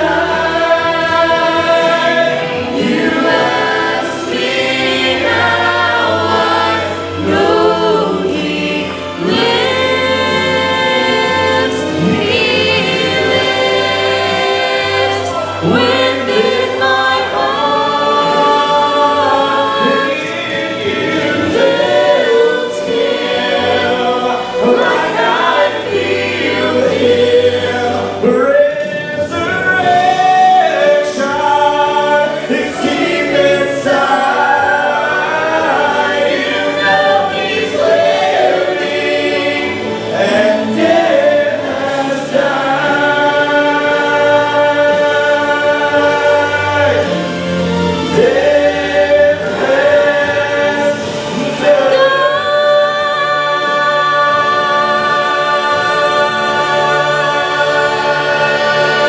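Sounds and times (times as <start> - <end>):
group singing gospel in harmony: 0.0 - 59.0.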